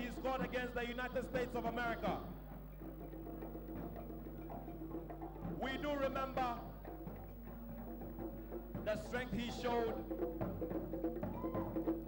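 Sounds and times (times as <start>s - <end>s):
faint background music: 0.0s - 12.0s
low electrical hum: 0.0s - 12.0s.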